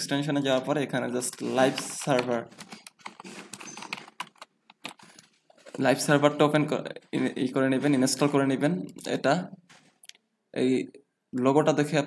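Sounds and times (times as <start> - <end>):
keyboard typing clicks: 1.7 - 5.3.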